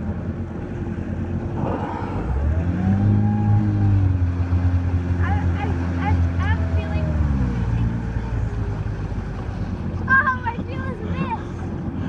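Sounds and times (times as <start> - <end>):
motorboat engine humming: 0.0 - 12.0.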